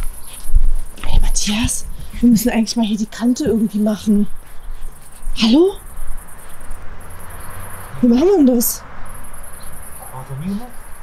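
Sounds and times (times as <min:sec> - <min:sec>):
high-pitched insect trill: 0:00.0 - 0:11.0.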